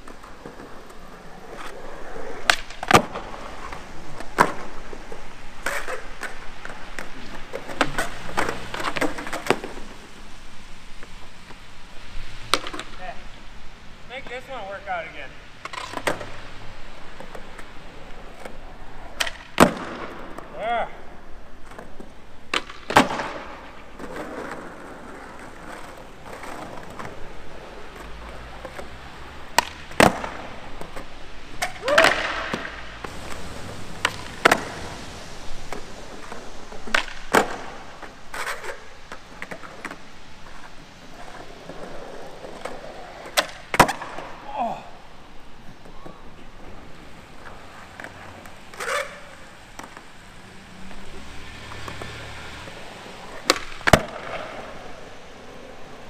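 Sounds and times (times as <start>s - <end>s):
skateboard deck clacking: 0.0s - 10.2s, 12.5s - 13.2s, 15.6s - 16.4s, 17.0s - 20.6s, 21.4s - 45.0s, 45.6s - 56.0s
skateboard wheels rolling on concrete: 0.0s - 56.0s.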